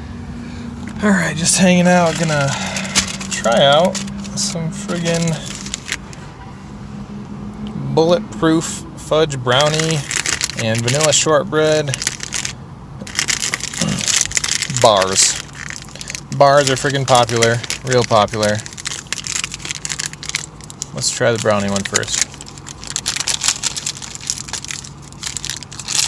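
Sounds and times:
plastic wrappers crinkling: 1.4s - 6.2s, 9.5s - 26.0s.

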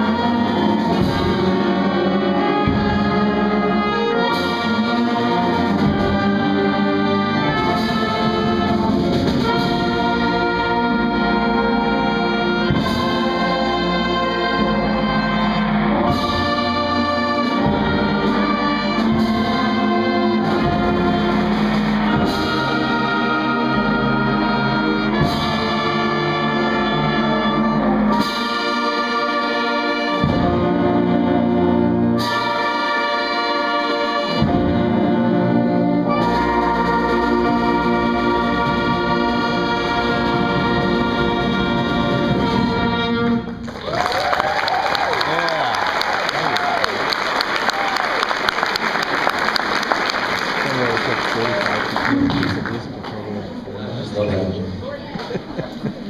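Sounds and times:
concert band playing: 0.0s - 56.0s.

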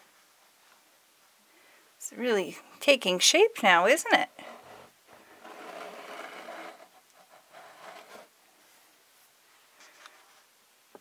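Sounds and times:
plastic toy pieces scraping: 4.4s - 8.3s.

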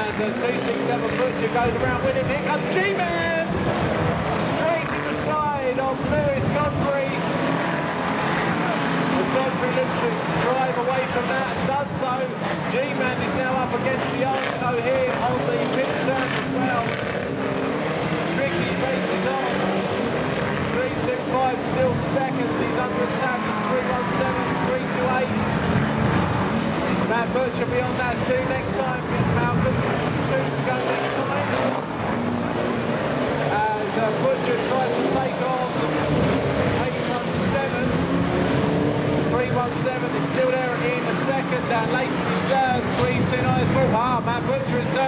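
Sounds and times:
commentator over public address: 0.0s - 45.0s
racing car engines: 0.0s - 45.0s.

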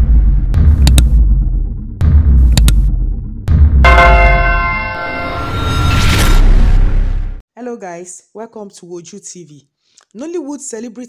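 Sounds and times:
deep throbbing bass music: 0.0s - 5.6s
bell-like chime: 3.9s - 6.4s.

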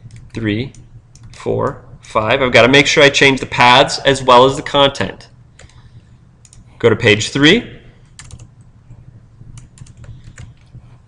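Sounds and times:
low hum: 0.0s - 11.0s
keyboard key presses: 8.2s - 8.5s, 9.6s - 10.7s.

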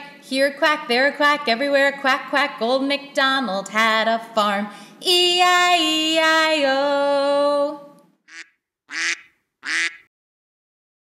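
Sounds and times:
duck quacks: 8.3s - 10.1s.

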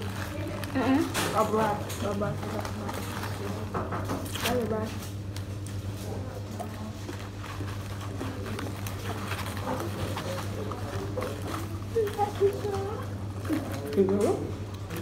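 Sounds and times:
faint voices: 6.0s - 15.0s
paper food box rustling: 6.1s - 15.0s.

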